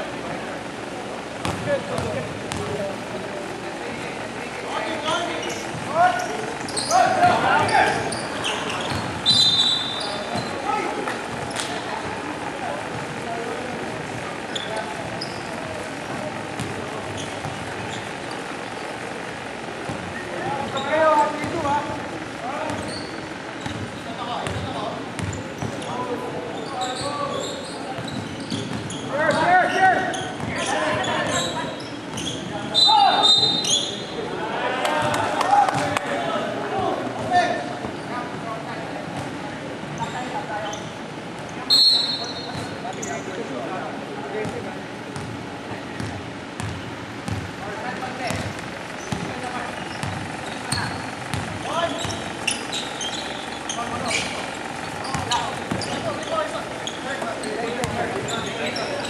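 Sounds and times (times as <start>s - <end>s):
basketball bouncing on hardwood: 1.4s - 2.8s, 46.0s - 47.5s, 50.0s - 52.2s, 55.1s - 56.0s, 57.8s - 58.0s
sneaker squeaks: 1.4s - 2.8s, 4.7s - 34.2s, 37.2s - 38.3s, 39.1s - 43.5s, 46.0s - 59.0s.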